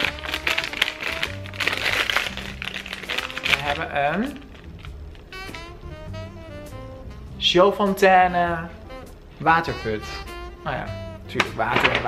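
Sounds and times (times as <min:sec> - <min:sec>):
plastic packet crinkling: 0:00.0 - 0:05.3
background music: 0:00.0 - 0:12.0.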